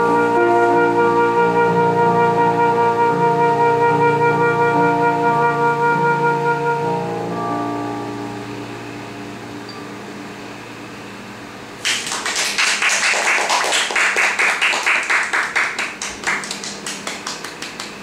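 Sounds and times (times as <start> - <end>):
keyboard chord: 0.0 - 11.8
audience applauding: 11.8 - 18.0.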